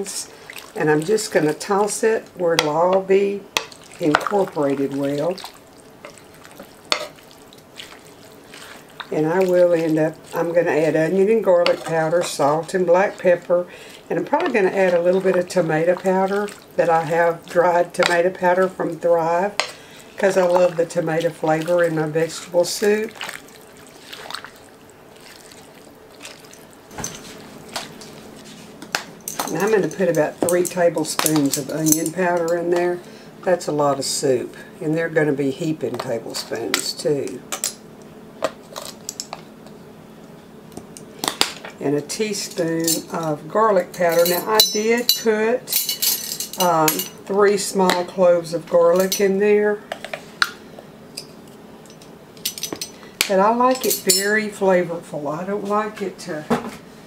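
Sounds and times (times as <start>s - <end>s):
liquid trickling and dripping: 14.8s - 16.8s, 22.8s - 26.8s
spoon clinking against dishes: 44.0s - 47.2s.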